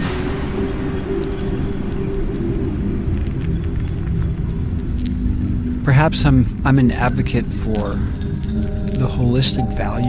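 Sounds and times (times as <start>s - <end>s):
low ambient drone: 0.0s - 10.0s.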